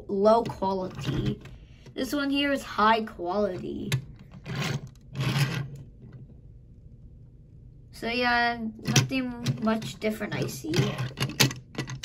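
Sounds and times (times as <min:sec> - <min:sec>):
toy truck scraping on table: 0:04.4 - 0:05.8.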